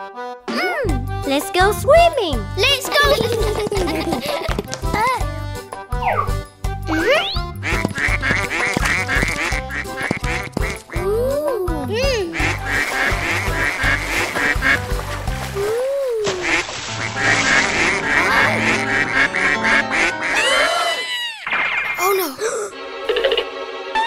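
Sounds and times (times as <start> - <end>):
bouncy background music: 0.0 - 20.5
cartoon ducklings quacking: 6.9 - 11.1, 12.1 - 14.8, 16.3 - 21.9.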